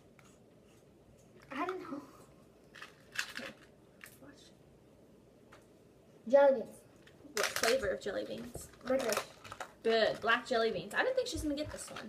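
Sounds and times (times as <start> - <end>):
plastic box crinkling: 7.4 - 10.8.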